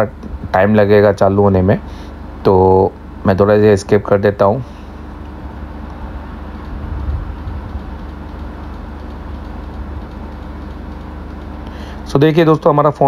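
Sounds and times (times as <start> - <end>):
faint steady hum: 0.0 - 13.0
low room rumble: 0.0 - 13.0.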